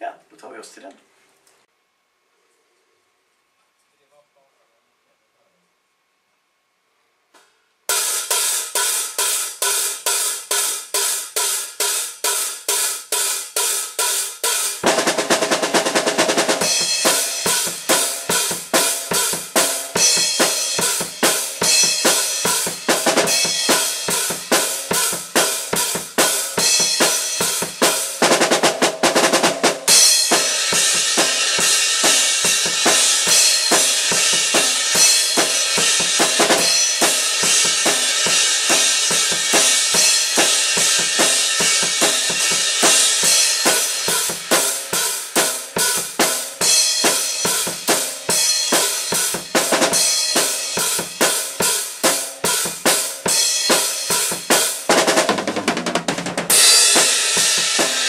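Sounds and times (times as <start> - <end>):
drum kit playing: 7.9 - 58.0
cymbal wash: 16.5 - 28.2, 29.7 - 54.9, 56.5 - 58.0.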